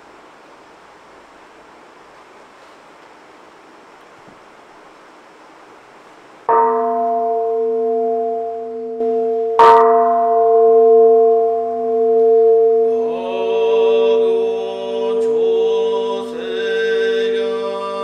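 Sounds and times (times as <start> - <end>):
bronze bowl bell ringing: 6.5 - 16.4.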